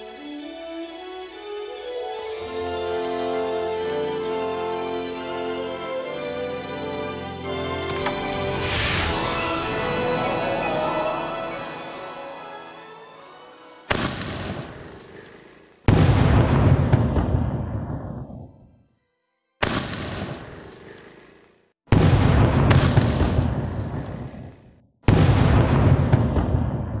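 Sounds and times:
firework bangs with rumbling decay: 0:15.9 - 0:18.2, 0:21.9 - 0:24.5, 0:25.1 - 0:27.0.

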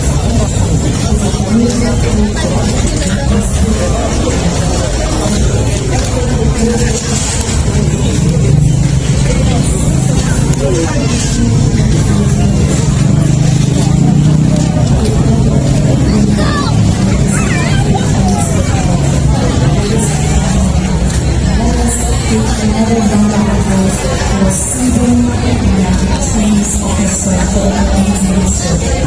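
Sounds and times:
crowd chatter: 0:00.0 - 0:29.0
steady low rumble: 0:00.0 - 0:29.0.

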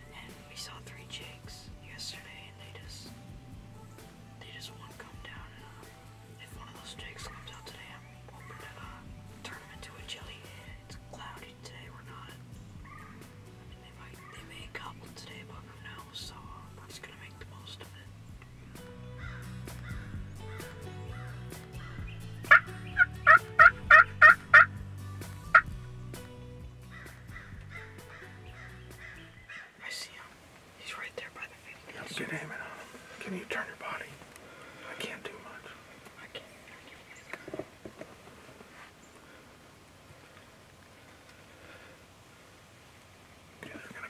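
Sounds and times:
turkey yelping: 0:12.8 - 0:13.3, 0:22.5 - 0:24.7.

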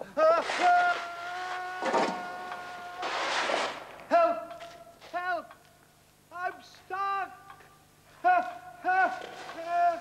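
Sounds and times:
man crying out on high note: 0:00.0 - 0:03.1.

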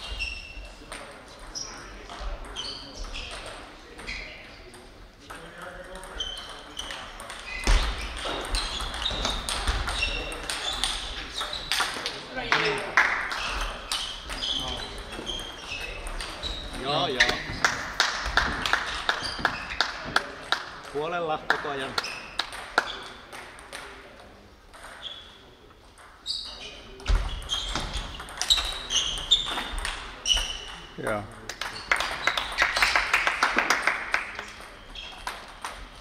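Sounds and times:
table tennis balls clicking: 0:05.3 - 0:24.0, 0:27.1 - 0:36.0
spectators clapping: 0:12.4 - 0:13.6, 0:17.2 - 0:23.0, 0:31.4 - 0:34.6.

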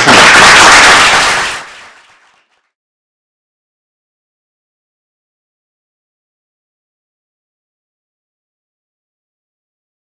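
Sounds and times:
audience applauding: 0:00.0 - 0:02.6.

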